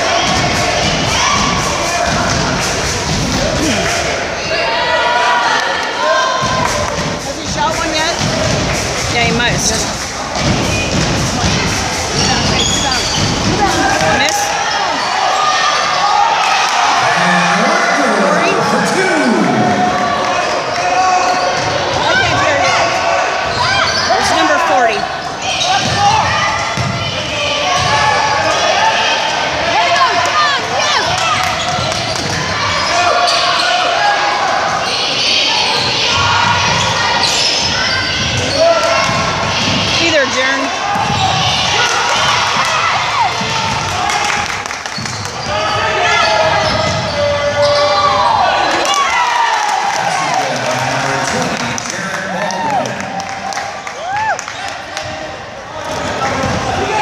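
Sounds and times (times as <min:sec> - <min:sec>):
crowd chatter and shouts: 0:00.0 - 0:57.0
sneakers squeaking: 0:06.4 - 0:15.9, 0:20.3 - 0:28.7, 0:30.4 - 0:34.0, 0:34.7 - 0:43.8, 0:44.9 - 0:48.2.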